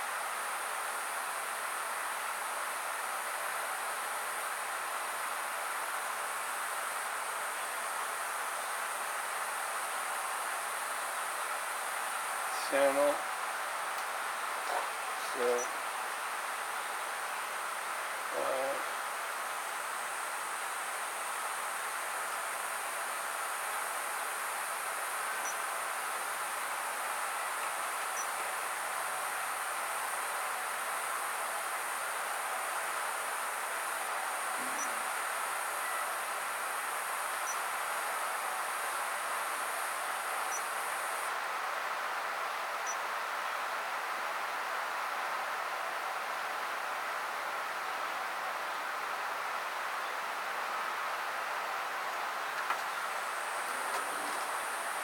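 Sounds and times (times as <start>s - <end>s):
background hiss: 0.0s - 55.0s.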